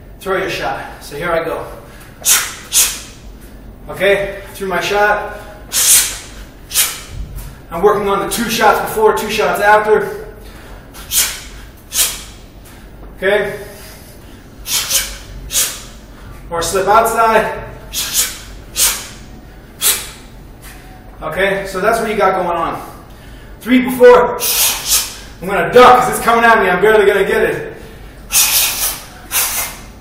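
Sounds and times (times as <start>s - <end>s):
sharp hissing breaths: 1.9s - 3.2s, 5.4s - 7.7s, 10.4s - 13.0s, 13.6s - 16.4s, 17.9s - 21.0s, 24.4s - 25.4s, 27.8s - 30.0s.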